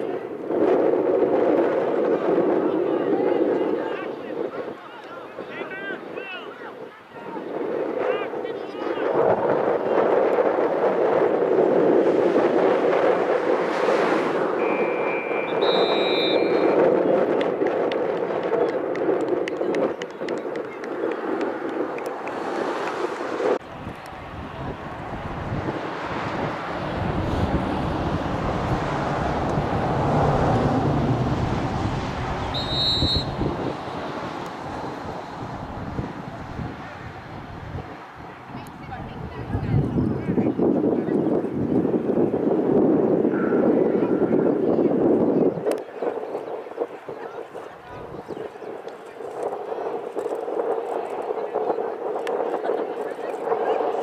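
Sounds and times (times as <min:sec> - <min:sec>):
spectators' voices: 0:00.0 - 0:30.7, 0:32.0 - 0:54.0
low wind rumble: 0:00.0 - 0:54.0
wind on microphone: 0:00.0 - 0:54.0
whistle blast: 0:14.6 - 0:16.8, 0:32.5 - 0:33.6.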